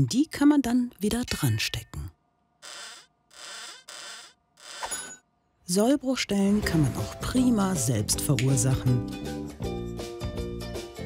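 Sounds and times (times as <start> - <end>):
toy barrier arm scraping: 2.6 - 5.2.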